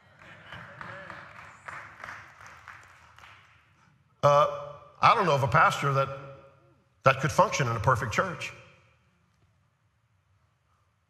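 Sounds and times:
congregation applauding: 0.0 - 3.8.

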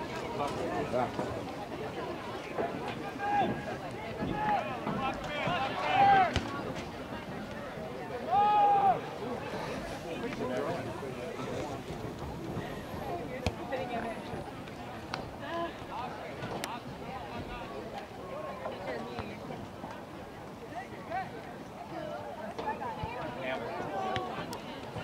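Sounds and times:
murmur of voices: 0.0 - 25.0
people shouting: 8.3 - 9.0.

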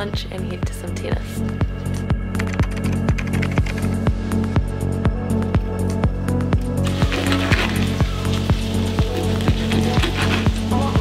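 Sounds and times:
electronic music with steady beat: 1.4 - 11.0.

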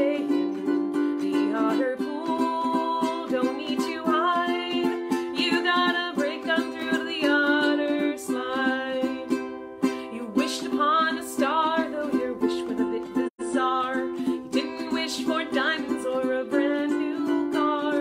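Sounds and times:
ukulele strumming: 0.0 - 18.0
woman singing: 0.0 - 18.0.

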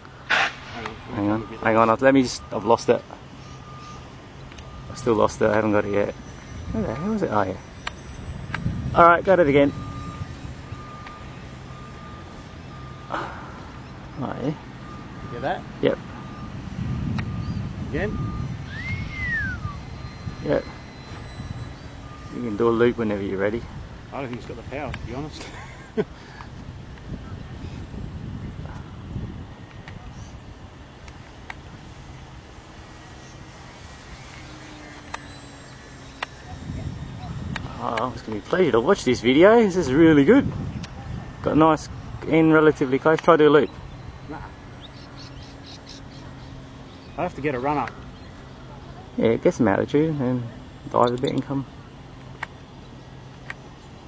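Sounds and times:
small bird chirping: 3.3 - 4.8, 17.2 - 22.6, 43.6 - 48.7
model plane motor drone: 15.0 - 51.0
whistle-like note: 17.3 - 22.5.

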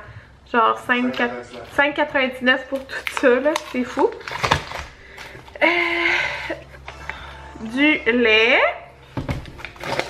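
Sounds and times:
plastic package knock and crinkle: 2.7 - 5.6, 9.2 - 10.0.

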